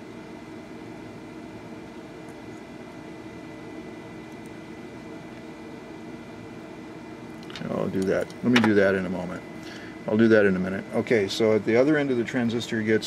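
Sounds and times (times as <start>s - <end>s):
background hum and hiss: 0.0s - 13.0s.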